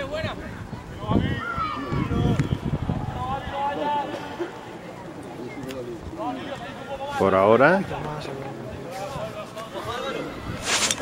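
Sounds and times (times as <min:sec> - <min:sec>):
faint voices calling out: 0:00.0 - 0:11.0
outdoor background noise: 0:00.0 - 0:11.0
loud shout: 0:01.0 - 0:04.4.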